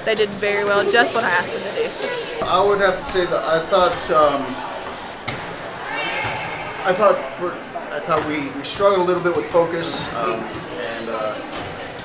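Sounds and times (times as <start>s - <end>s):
gym background noise: 0.0s - 12.0s.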